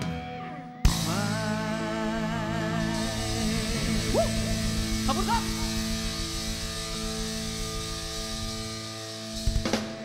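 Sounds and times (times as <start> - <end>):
rock band playing: 0.0 - 10.0.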